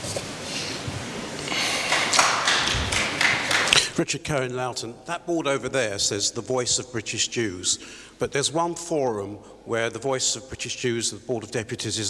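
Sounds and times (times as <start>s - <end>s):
audience applauding: 1.4s - 4.0s.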